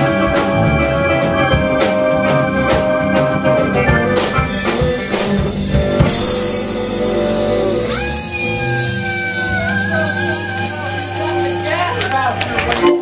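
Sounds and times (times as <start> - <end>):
pedal steel guitar sliding tone: 0.0 - 12.1
drum kit: 0.0 - 13.0
electric guitar: 0.0 - 13.0
keyboard: 0.0 - 13.0.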